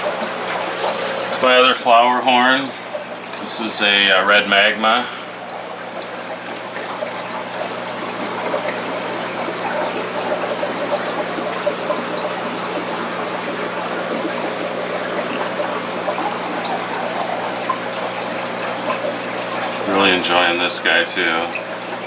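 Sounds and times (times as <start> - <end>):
air bubbling: 0.0 - 3.8, 4.5 - 22.0
water trickling: 0.0 - 22.0.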